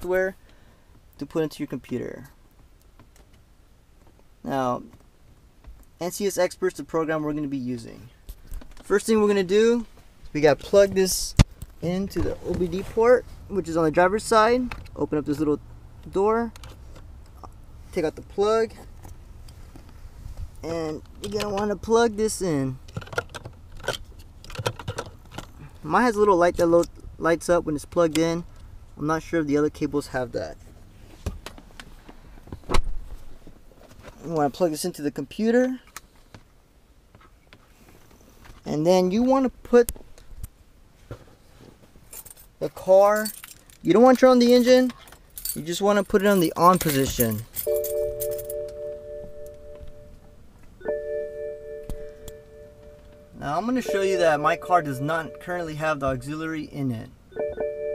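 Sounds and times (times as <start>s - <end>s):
dashboard warning chime: 47.6s - 56.5s, 57.3s - 57.9s.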